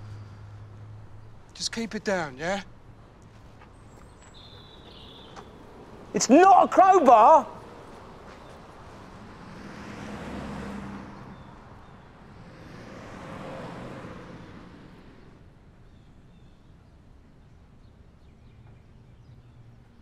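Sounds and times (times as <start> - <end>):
vehicles passing: 0.0 - 20.0.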